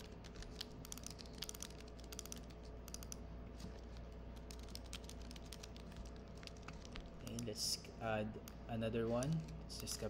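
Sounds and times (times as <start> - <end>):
computer keyboard typing: 0.0 - 3.2, 3.8 - 7.6
faint low hum: 0.0 - 10.0.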